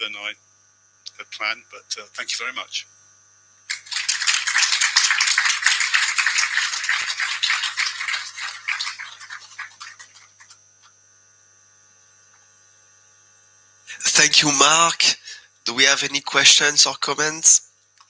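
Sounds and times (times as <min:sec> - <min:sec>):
audience applauding: 0:03.7 - 0:10.5.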